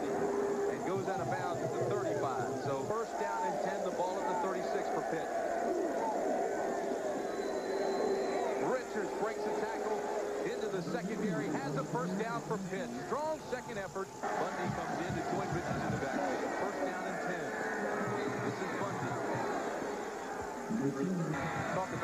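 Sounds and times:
stadium crowd cheering and shouting: 0.0 - 22.0.

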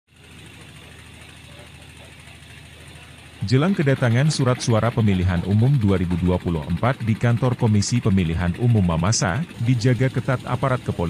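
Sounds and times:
low engine hum: 0.1 - 11.0.

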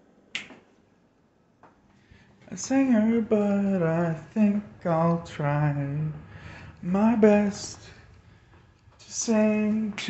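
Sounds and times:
sharp click: 0.4 - 0.6.

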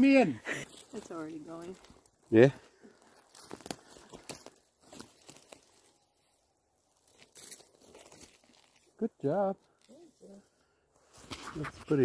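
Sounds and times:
stick crackling pine needles and twigs: 0.7 - 2.2, 2.9 - 9.0, 9.6 - 10.5
stick scraping soil: 11.1 - 12.0.

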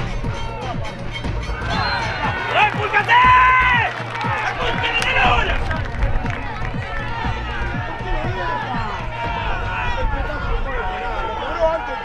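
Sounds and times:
people shouting: 1.5 - 5.5, 6.3 - 12.0.

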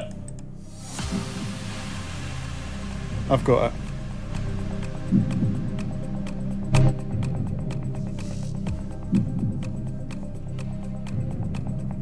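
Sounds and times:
hiss: 0.6 - 6.6, 7.9 - 9.1
countdown timer music: 2.4 - 12.0.

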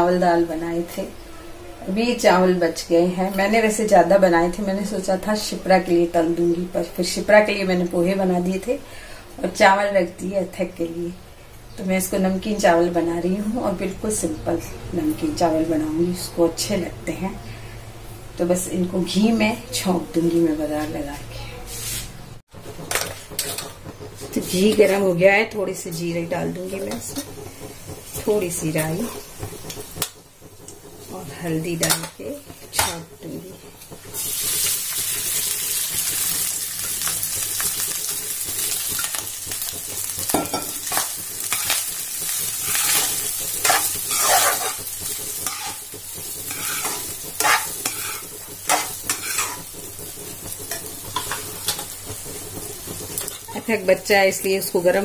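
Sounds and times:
rice sizzling in a pan: 0.0 - 55.0
spatula scraping a pan: 20.8 - 22.2, 22.8 - 25.1, 26.3 - 52.1
utensils clinking on steel cookware: 22.8 - 35.2, 35.8 - 50.0, 50.6 - 52.1.

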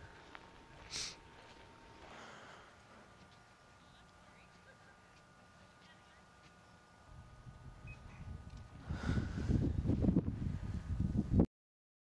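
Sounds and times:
wind buffeting microphone: 7.0 - 11.5.

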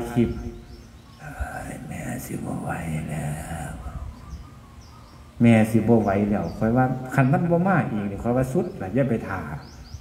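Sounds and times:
man speaking: 0.0 - 0.6, 1.2 - 4.0, 5.4 - 9.7
faint bird chirps: 0.0 - 10.0
low steady background noise: 0.0 - 10.0.

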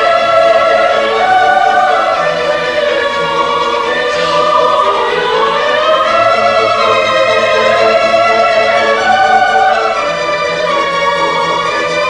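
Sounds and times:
opera singing voices: 0.0 - 12.0
orchestra playing: 0.0 - 12.0.

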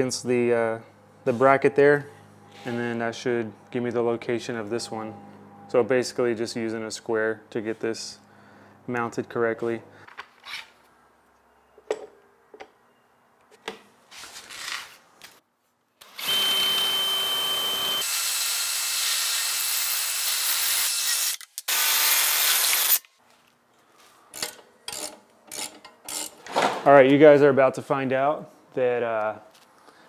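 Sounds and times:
cordless drill boring through steel: 16.0 - 23.0.

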